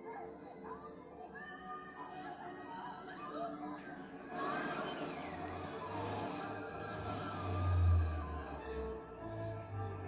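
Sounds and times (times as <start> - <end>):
dramatic cartoon music: 4.1 - 10.0.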